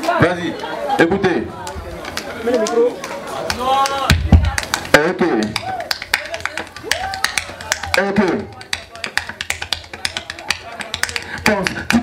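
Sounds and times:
voices: 0:00.0 - 0:12.0
beat tapped by hand: 0:04.1 - 0:12.0.

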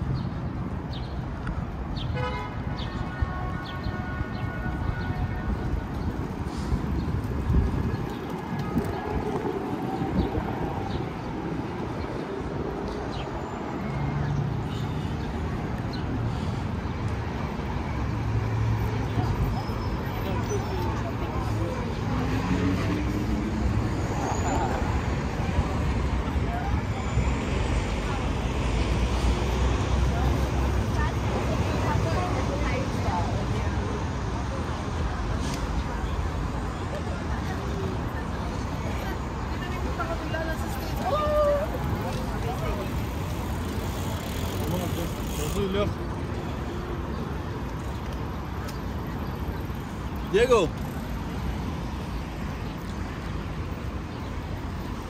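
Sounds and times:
road traffic rumble: 0:00.0 - 0:55.0
passers-by talking: 0:03.0 - 0:55.0.

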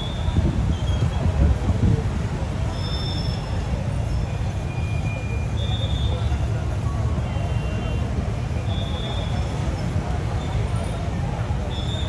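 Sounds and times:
chatter of many people: 0:00.0 - 0:12.0
traffic rumble: 0:00.0 - 0:12.0.

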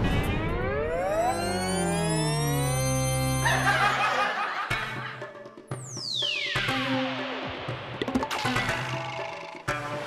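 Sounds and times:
lower tones sliding down: 0:00.0 - 0:03.5
tones gliding up in pitch: 0:00.2 - 0:03.5
stuttering laugh-like sound: 0:03.4 - 0:05.1.

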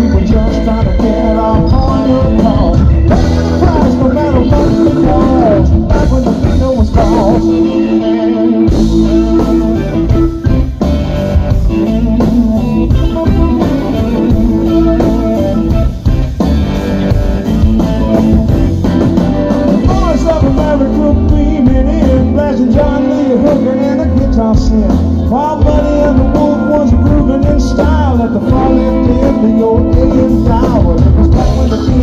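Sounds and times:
bass guitar: 0:00.0 - 0:32.0
drums: 0:00.0 - 0:32.0
electric guitar with bent notes: 0:00.0 - 0:32.0.

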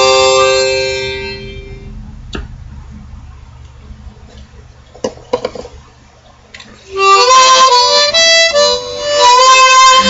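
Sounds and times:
harmonica chord: 0:00.0 - 0:02.0, 0:06.9 - 0:10.0.

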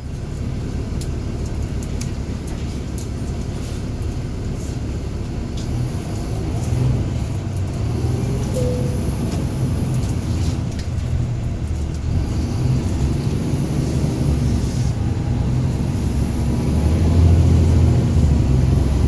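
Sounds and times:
bus diesel engine rumbling: 0:00.0 - 0:19.0
faint rising engine whine: 0:08.3 - 0:10.5.

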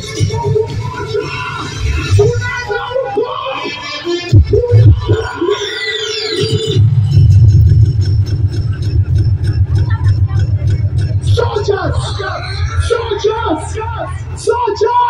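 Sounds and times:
dj music over pa system: 0:00.0 - 0:15.0
heavy bass beat: 0:03.6 - 0:05.7, 0:06.3 - 0:15.0
voice over music: 0:09.1 - 0:15.0.

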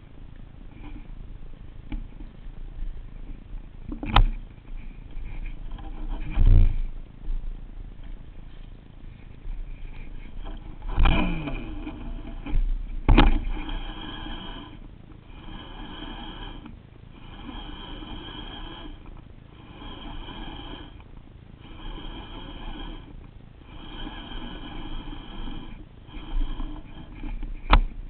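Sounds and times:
fishing reel gear whirring: 0:09.7 - 0:28.0.

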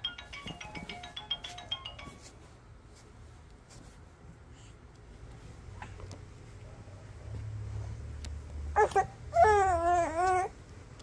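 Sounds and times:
soft brushes: 0:00.2 - 0:06.6.

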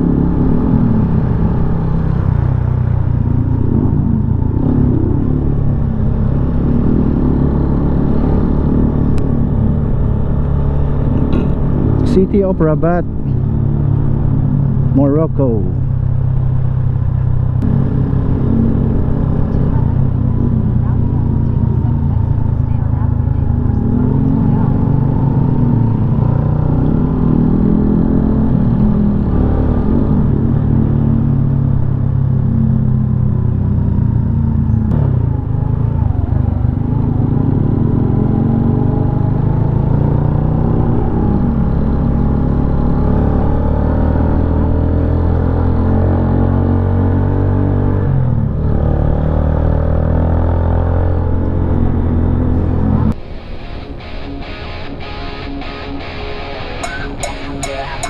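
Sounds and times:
motorcycle engine running: 0:00.0 - 0:47.0.

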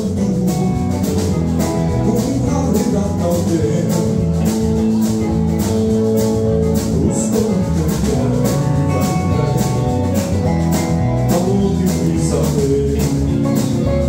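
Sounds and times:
live rock band playing: 0:00.0 - 0:14.0.

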